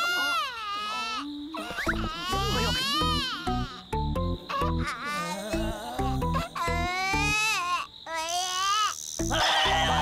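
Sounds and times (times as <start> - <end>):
cartoon baby crying: 0.0 - 10.0
background music: 1.8 - 7.5, 9.2 - 10.0.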